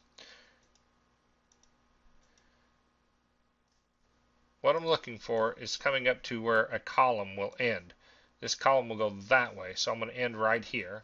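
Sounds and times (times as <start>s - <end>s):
faint computer mouse clicks: 0.6s - 0.9s, 1.5s - 2.5s.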